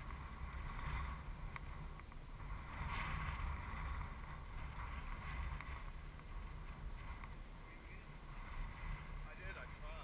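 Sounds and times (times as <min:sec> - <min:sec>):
faint outdoor ambience: 0:00.0 - 0:10.0
wind rumbling on microphone: 0:00.0 - 0:10.0.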